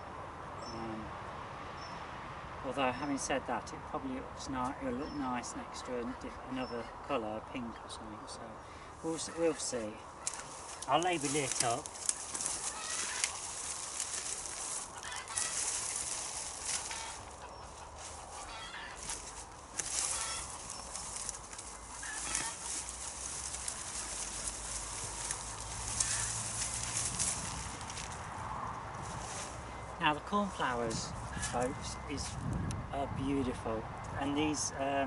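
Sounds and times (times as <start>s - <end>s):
rustling of stems and leaves: 8.7s - 32.5s.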